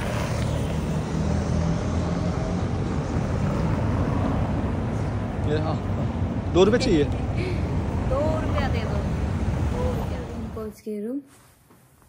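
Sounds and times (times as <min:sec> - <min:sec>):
passing cars rumbling: 0:00.0 - 0:10.7.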